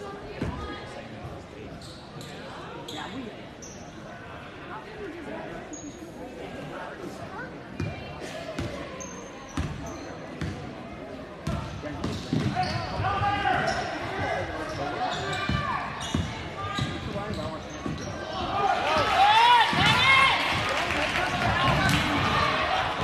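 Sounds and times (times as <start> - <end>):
voices of players and spectators: 0.0 - 23.0.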